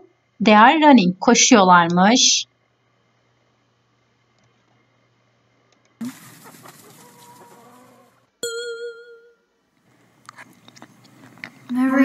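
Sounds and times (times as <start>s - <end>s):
hens clucking: 6.0s - 8.2s
farmyard noise: 6.0s - 8.3s.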